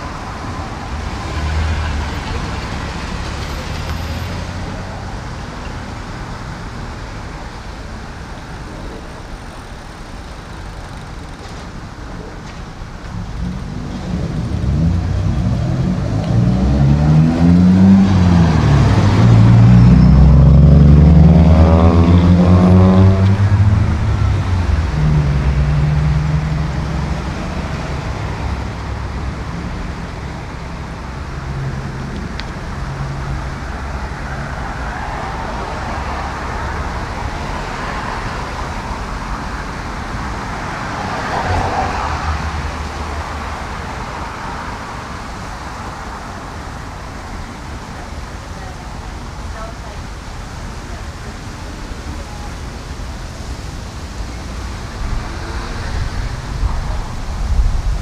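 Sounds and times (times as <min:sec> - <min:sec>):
vehicle engine passing: 0:00.0 - 0:05.6, 0:13.1 - 0:48.0
road traffic: 0:00.0 - 0:58.0.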